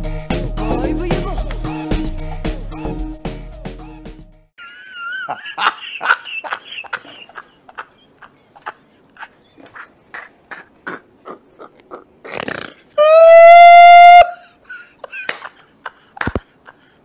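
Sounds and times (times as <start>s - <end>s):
man laughing in breathy gasps: 14.3s - 17.0s.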